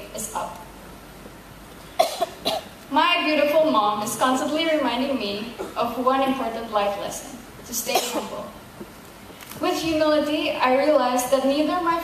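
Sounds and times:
person coughing: 2.0s - 2.7s, 5.5s - 5.8s, 7.9s - 8.4s.

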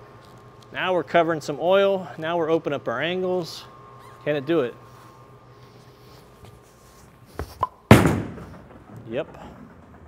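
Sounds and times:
bowling ball thud: 7.4s - 9.0s
bowling ball rolling rumble: 7.9s - 10.0s.

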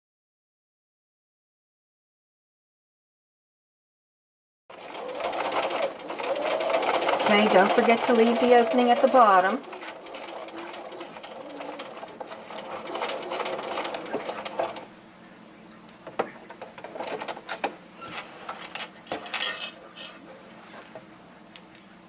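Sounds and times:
sewing machine stitching: 4.7s - 14.9s, 16.6s - 19.3s.

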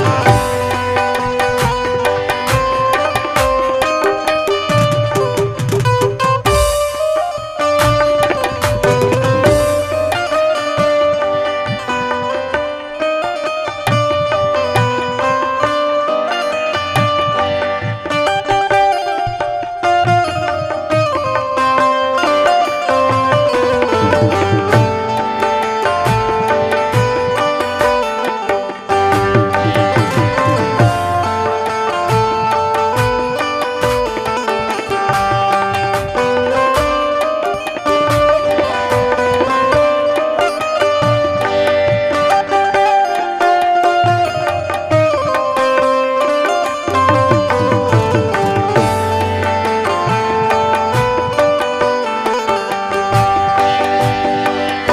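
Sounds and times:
harmonium melody: 0.0s - 54.9s
tabla strokes: 0.0s - 54.9s.

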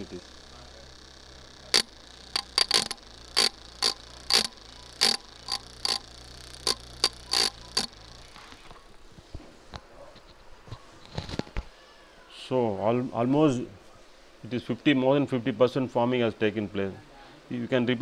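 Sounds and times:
sharp irregular clicks: 0.0s - 8.4s
small motor humming: 0.0s - 8.9s.

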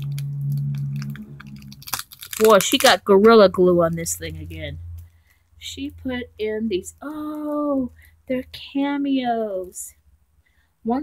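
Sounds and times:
packaging clicks and crinkles: 0.0s - 3.5s
low steady hum: 0.0s - 11.0s.

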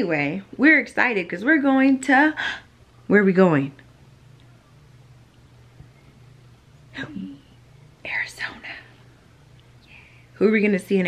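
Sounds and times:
faint low hum: 0.0s - 11.0s
person whispering: 8.1s - 8.9s.

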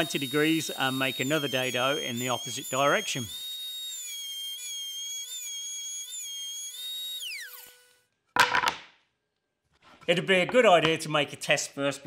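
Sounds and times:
router whining: 0.0s - 8.0s.

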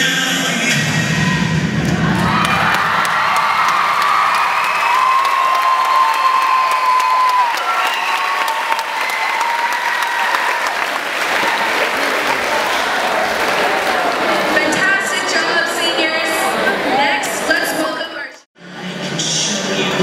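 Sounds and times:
high-pitched cheer: 1.1s - 14.4s
crowd applauding: 1.8s - 15.3s.

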